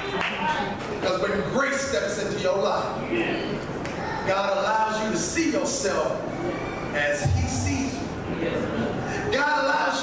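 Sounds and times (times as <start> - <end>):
man preaching through pa: 7.0 - 8.1, 9.3 - 10.0.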